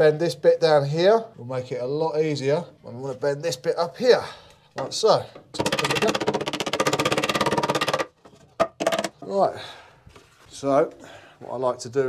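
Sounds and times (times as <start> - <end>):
rapid tapping on lead sheet: 5.6 - 8.1.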